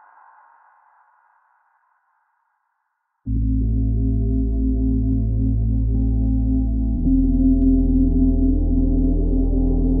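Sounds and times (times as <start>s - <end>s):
soft background music tone: 3.3s - 10.0s.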